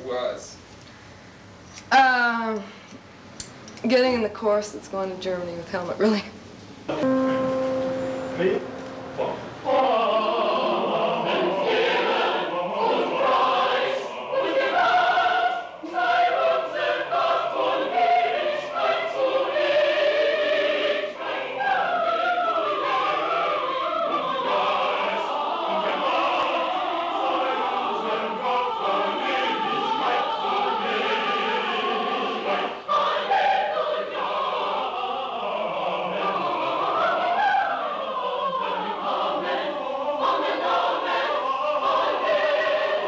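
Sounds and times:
mixed choir singing: 7.0 - 43.0.

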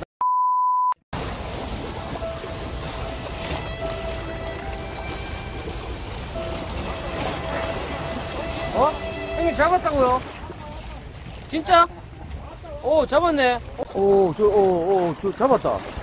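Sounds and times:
sea waves: 1.1 - 16.0.

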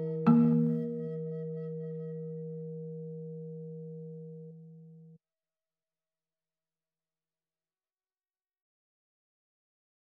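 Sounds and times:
bronze gamelan tone ringing: 0.0 - 5.2.

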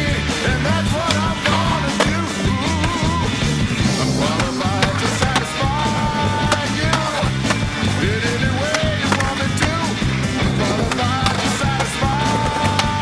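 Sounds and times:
music soundtrack: 0.0 - 13.0
skateboard trucks grinding: 0.0 - 13.0
skateboard pops: 0.9 - 3.2, 4.2 - 7.8, 8.6 - 9.9.

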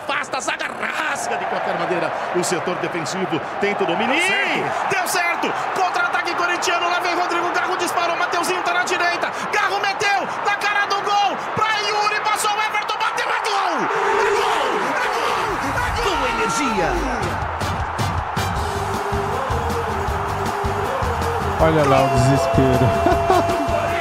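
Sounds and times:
background music: 15.4 - 24.0
commentator long drawn-out shouts: 21.4 - 24.0
radio commentator narrating: 21.6 - 23.0.

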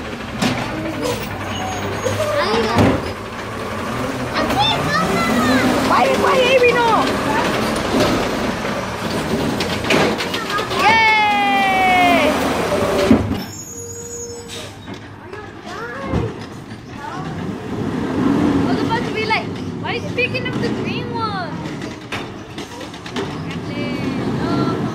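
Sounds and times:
garbage truck engine running: 0.0 - 24.9
hydraulic arm lifting cart: 0.0 - 24.9.

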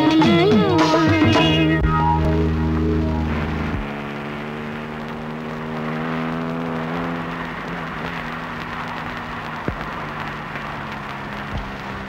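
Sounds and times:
car cabin running noise: 0.8 - 12.0
held low tone: 1.2 - 4.2.

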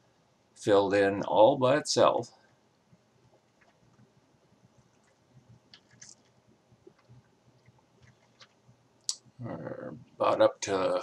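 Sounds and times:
man's voice: 0.7 - 2.3, 9.4 - 11.0.

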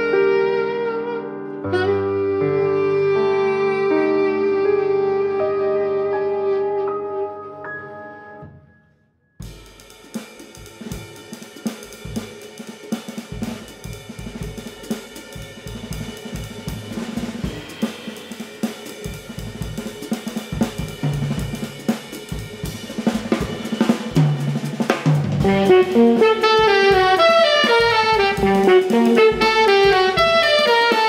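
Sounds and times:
jazz drum kit solo: 0.0 - 1.0, 9.4 - 31.0
big band held chord: 15.6 - 31.0.

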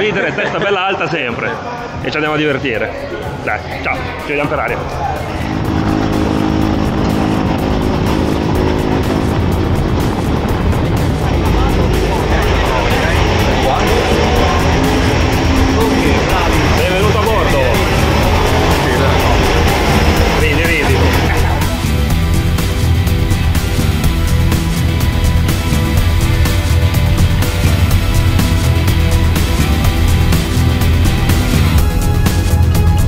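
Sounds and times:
voices: 0.0 - 31.8
background music: 0.0 - 33.0
light aircraft engine running: 5.2 - 33.0.

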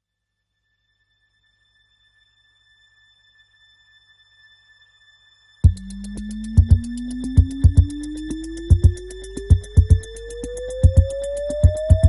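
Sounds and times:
faint high electronic tone: 5.6 - 12.0.

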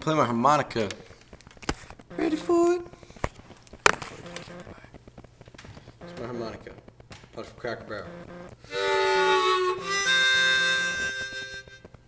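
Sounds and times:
camera handling noise: 3.2 - 4.5.

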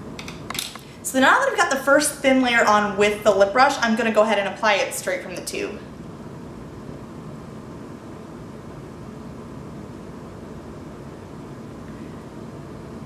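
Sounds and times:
low background hum and hiss: 0.0 - 13.0.

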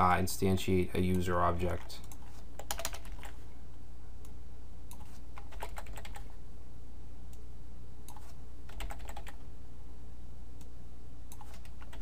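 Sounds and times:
steady low hum: 0.0 - 12.0
computer keyboard keystrokes: 2.0 - 3.4, 4.9 - 6.3, 8.1 - 9.4, 11.3 - 12.0.

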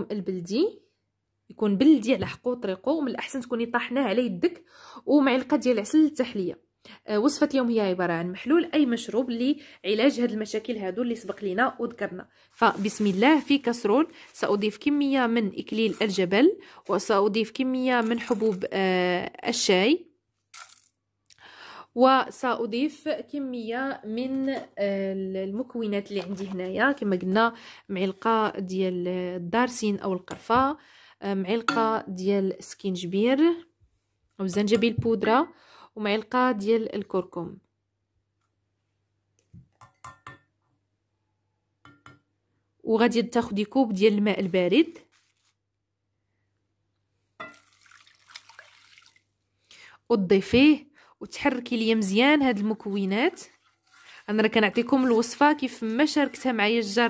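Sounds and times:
tea grains rattling into metal pan: 18.0 - 18.7
water pouring into a saucepan: 47.5 - 49.4.

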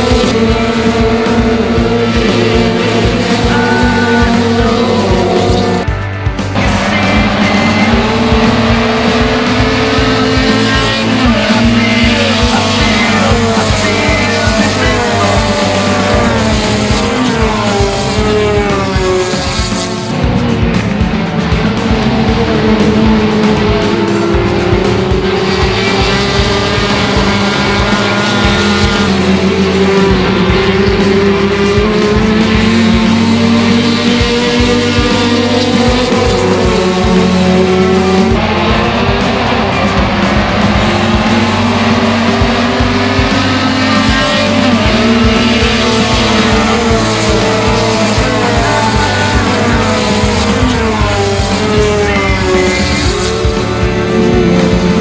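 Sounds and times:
music with steady beat: 0.0 - 55.0
racing car engines passing: 0.0 - 55.0.

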